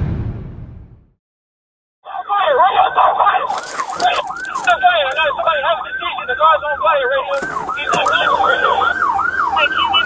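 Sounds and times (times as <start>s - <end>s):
police siren yelp: 2.0s - 10.0s.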